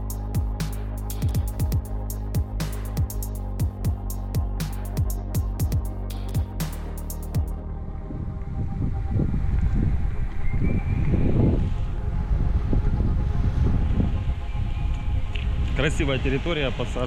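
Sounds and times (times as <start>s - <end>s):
electronic background music: 0.0s - 17.0s
wind buffeting microphone: 7.7s - 17.0s.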